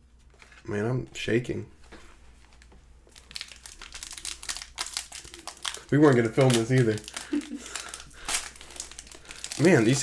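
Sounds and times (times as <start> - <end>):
foil wrapper crinkling: 2.5 - 10.0.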